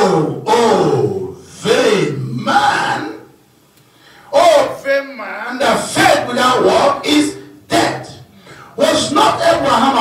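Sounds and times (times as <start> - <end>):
man vocalising into a microphone: 5.6 - 10.0.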